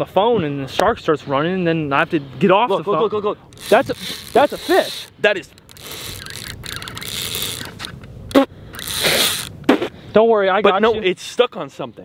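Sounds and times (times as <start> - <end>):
fishing reel clicking and scraping: 3.5 - 8.0, 8.7 - 9.5.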